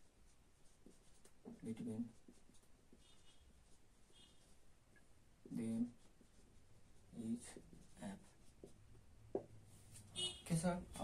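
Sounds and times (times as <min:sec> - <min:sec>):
marker scratching on whiteboard: 0:00.0 - 0:10.4
marker squeak: 0:02.9 - 0:04.6.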